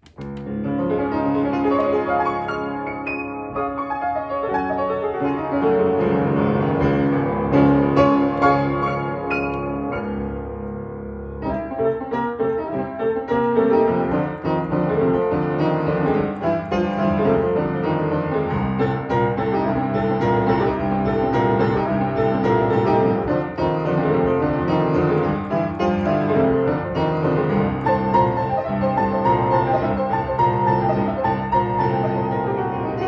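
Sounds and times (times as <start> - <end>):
upright piano chords and melody: 0.0 - 33.0.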